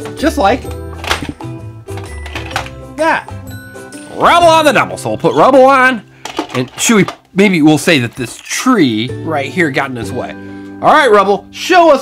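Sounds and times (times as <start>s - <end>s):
background music: 0.0s - 12.0s
plastic toy launcher click and clatter: 2.0s - 2.8s, 6.2s - 7.2s.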